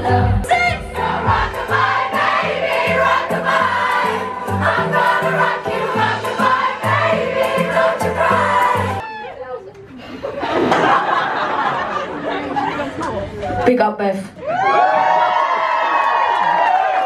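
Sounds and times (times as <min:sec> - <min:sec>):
woman singing: 0:00.0 - 0:01.4
crowd singing along: 0:00.0 - 0:09.0
pop band with pulsing bass: 0:00.0 - 0:09.0.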